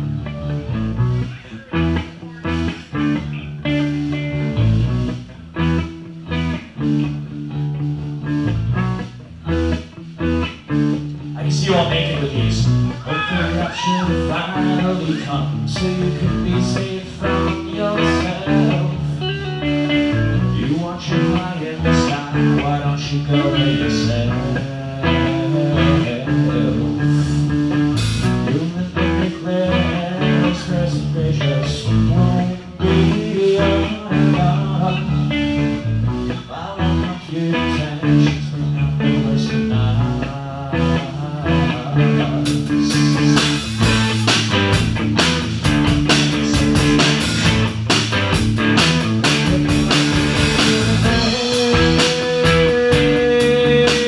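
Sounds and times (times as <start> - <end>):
bass guitar: 0.0 - 54.0
electric guitar: 0.0 - 54.0
drum kit with cymbals: 27.8 - 28.4, 42.5 - 54.0.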